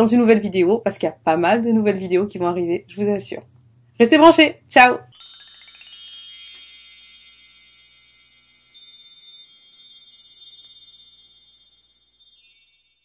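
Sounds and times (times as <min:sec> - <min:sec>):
high ringing shimmer: 0:05.1 - 0:13.0
high tinkling chimes: 0:05.1 - 0:13.0.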